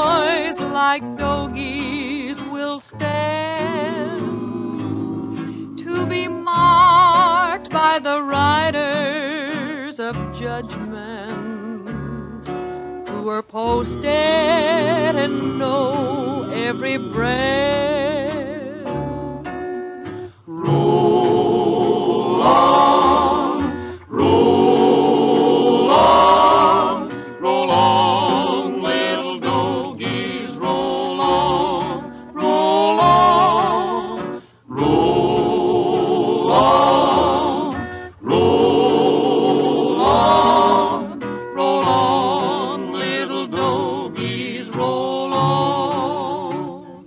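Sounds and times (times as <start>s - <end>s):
instrumental accompaniment: 0.0s - 47.0s
person singing with vibrato: 13.4s - 19.0s, 20.4s - 47.0s.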